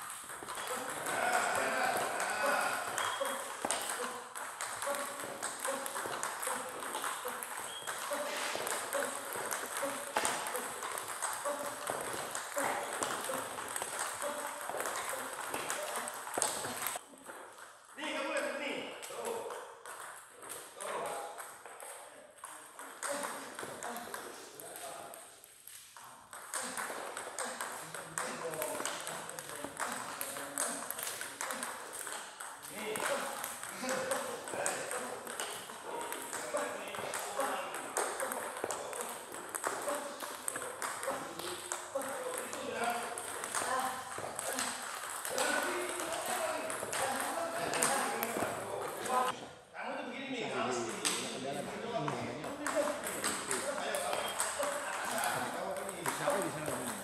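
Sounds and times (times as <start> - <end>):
table tennis balls clicking: 0.0 - 17.6, 19.2 - 49.4, 52.4 - 57.0.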